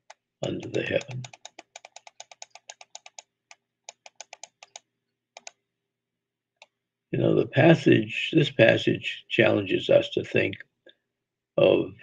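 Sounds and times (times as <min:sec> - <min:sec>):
computer keys clicking: 0:00.0 - 0:05.6.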